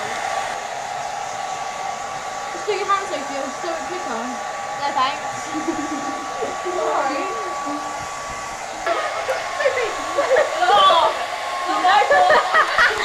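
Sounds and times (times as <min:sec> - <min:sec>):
hair dryers blowing: 0:00.0 - 0:13.0.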